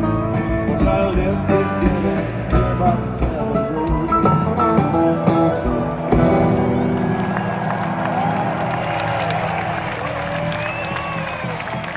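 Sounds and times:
country-rock band playing: 0:00.0 - 0:11.9
crowd cheering and applauding: 0:05.3 - 0:11.9.

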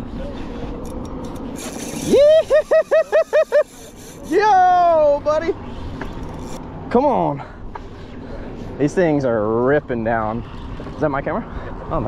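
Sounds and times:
person laughing: 0:02.0 - 0:03.9.

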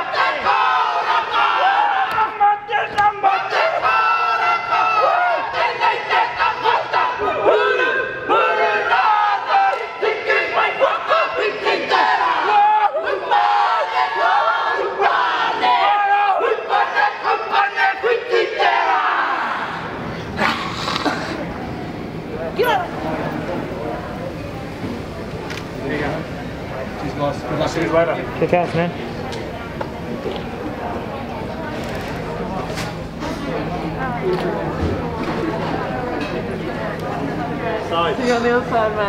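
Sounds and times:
group chanting in unison: 0:00.0 - 0:02.4, 0:03.1 - 0:20.0
crowd noise: 0:00.0 - 0:39.0.

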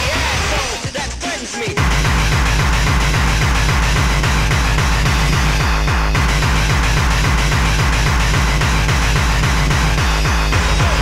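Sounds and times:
fast kick drum beat: 0:00.0 - 0:11.0
dense noisy synth layer: 0:01.8 - 0:11.0.

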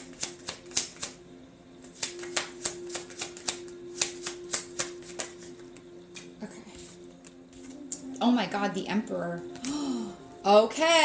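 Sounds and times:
cards being shuffled: 0:00.0 - 0:01.2, 0:01.8 - 0:08.1.

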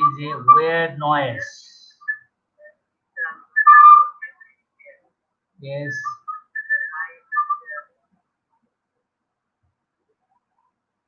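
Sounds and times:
high whistling chirps: 0:01.4 - 0:05.0, 0:05.7 - 0:07.9
steady whistle tone: 0:01.4 - 0:05.0, 0:05.8 - 0:07.9.

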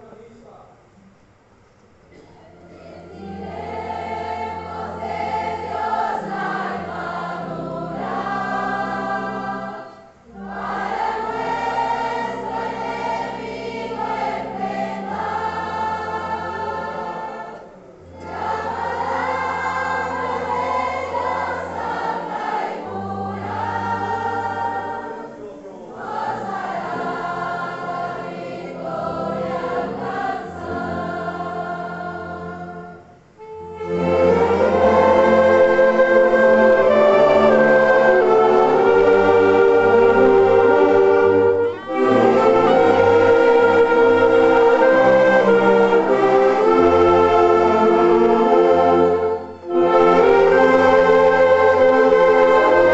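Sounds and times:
congregation singing a hymn: 0:02.1 - 0:52.9
instruments accompanying: 0:02.6 - 0:52.9.

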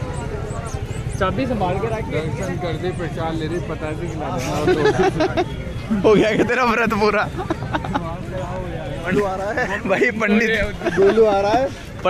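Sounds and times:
crowd babble: 0:00.0 - 0:12.0
men talking: 0:01.2 - 0:12.0.

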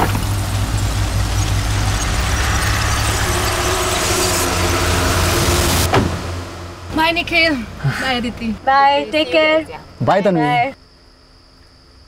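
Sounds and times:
car engine running: 0:00.0 - 0:10.7.

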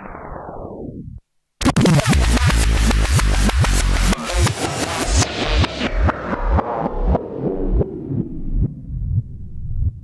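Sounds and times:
drum and bass track: 0:01.6 - 0:10.0.

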